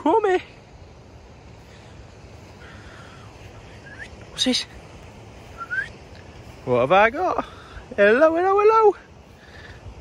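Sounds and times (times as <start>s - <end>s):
wind rumbling on microphone: 0.0s - 10.0s
short rising whistle-like tone: 5.6s - 6.0s.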